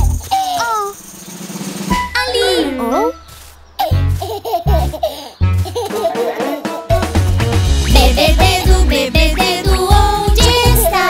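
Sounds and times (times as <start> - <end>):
cartoon baby giggling: 0.2 - 1.0, 2.2 - 3.2, 3.8 - 6.9
children's music with bass beat: 1.9 - 11.0.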